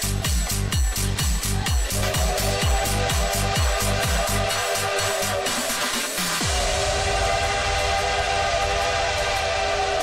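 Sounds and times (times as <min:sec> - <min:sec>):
electronic dance music bass: 0:00.0 - 0:10.0.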